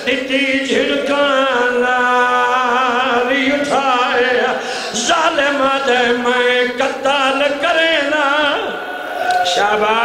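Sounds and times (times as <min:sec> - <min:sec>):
man chanting through loudspeaker: 0:00.0 - 0:10.0.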